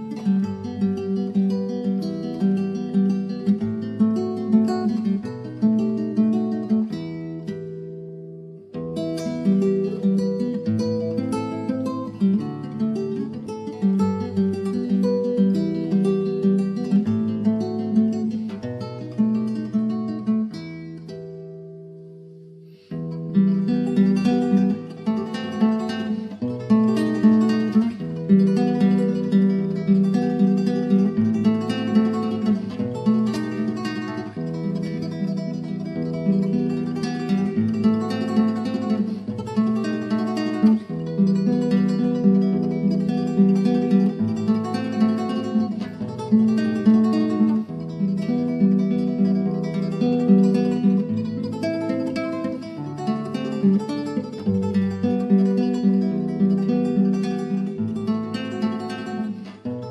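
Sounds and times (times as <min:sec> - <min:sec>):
acoustic guitar plucking: 0:00.0 - 0:59.9.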